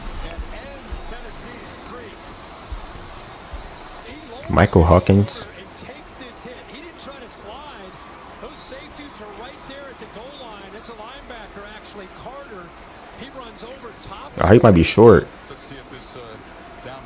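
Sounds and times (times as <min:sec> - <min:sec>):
stadium crowd noise: 0:00.0 - 0:17.0
announcer's voice on television: 0:04.1 - 0:16.2.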